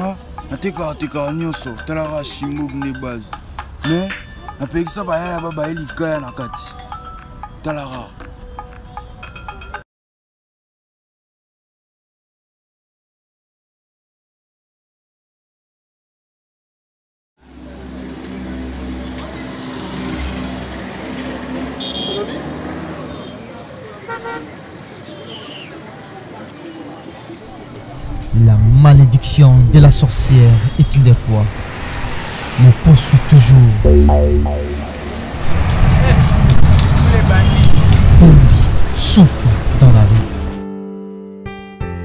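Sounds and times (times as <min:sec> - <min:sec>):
bus driving past: 0:17.5 - 0:23.8.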